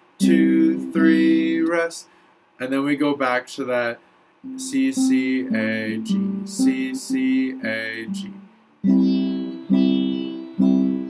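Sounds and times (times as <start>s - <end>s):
classical guitar strumming chord: 8.0s - 11.0s.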